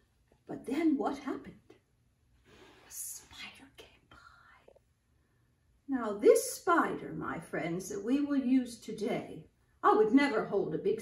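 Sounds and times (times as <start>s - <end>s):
woman whispering: 2.9s - 4.8s.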